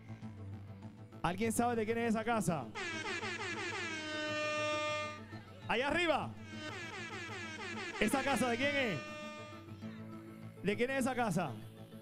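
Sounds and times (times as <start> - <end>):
horn-like tone sliding down: 2.8 - 5.4, 6.4 - 9.7.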